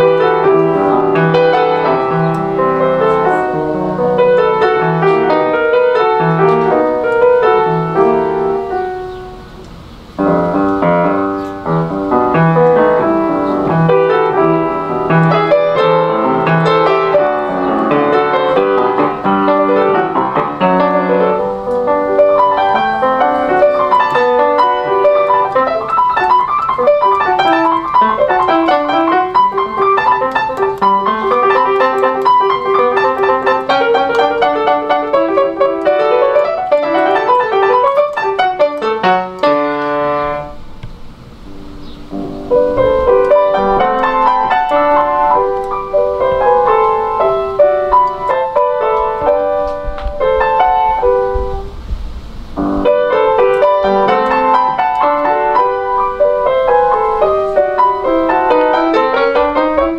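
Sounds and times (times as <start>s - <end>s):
solo piano playing: 0.0s - 59.9s.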